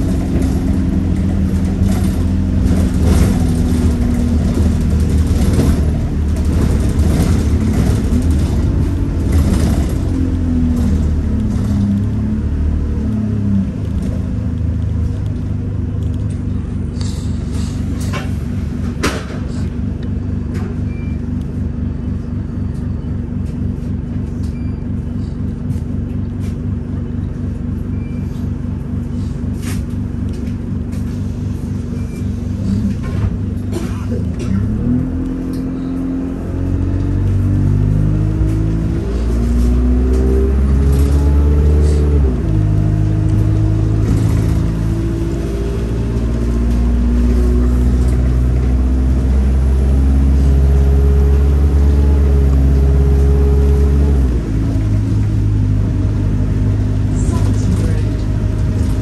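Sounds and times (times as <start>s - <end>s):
bus engine idling and accelerating: 0.0s - 59.0s.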